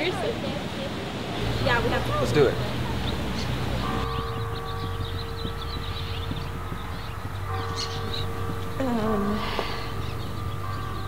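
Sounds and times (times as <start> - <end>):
outdoor background noise: 0.0 - 11.0
small birds chirping: 0.0 - 11.0.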